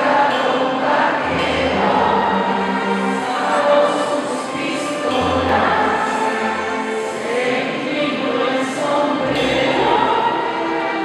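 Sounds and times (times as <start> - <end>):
orchestra sustained notes: 0.0 - 11.0.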